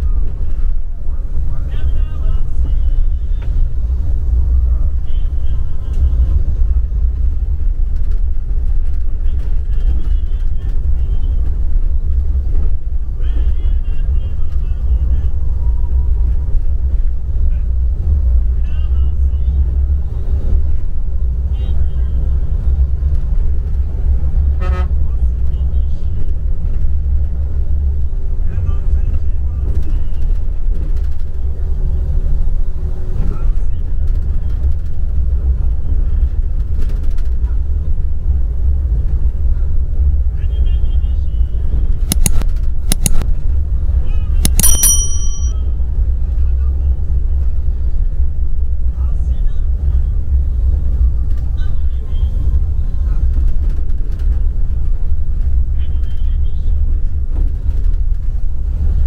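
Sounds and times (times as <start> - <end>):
bus engine rumble: 0.0 - 59.0.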